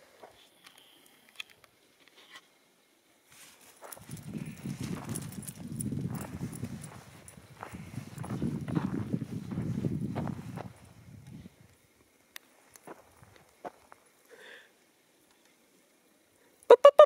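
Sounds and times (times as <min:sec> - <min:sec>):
footsteps crunching on pine needles: 0:03.3 - 0:11.0.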